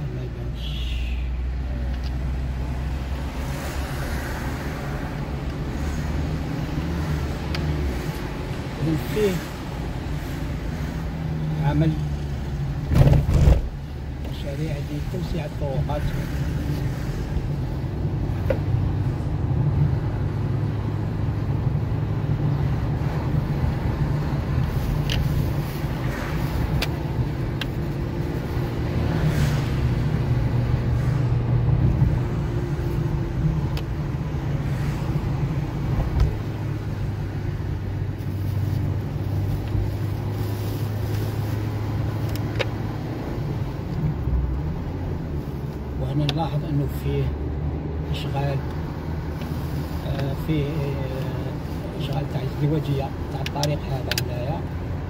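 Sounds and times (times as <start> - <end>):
car engine and tyres rumble: 0.0 - 55.0.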